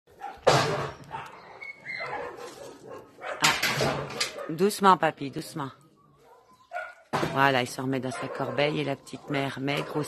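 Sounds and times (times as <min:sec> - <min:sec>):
dog barking harshly: 0:00.2 - 0:04.7, 0:08.0 - 0:10.0
dog whining: 0:01.1 - 0:02.3.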